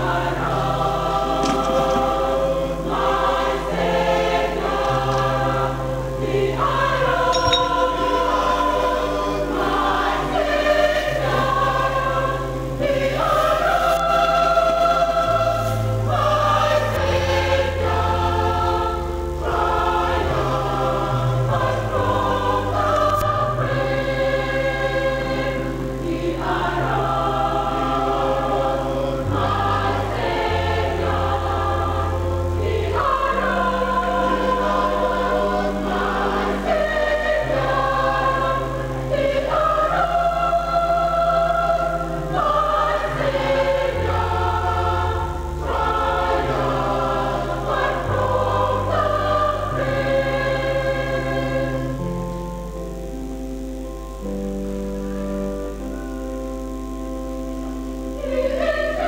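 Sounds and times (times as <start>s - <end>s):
church choir singing: 0.0s - 59.0s.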